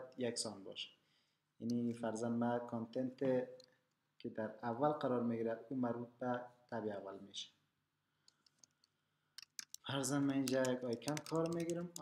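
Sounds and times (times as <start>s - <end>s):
computer keyboard keystrokes: 9.4s - 12.0s.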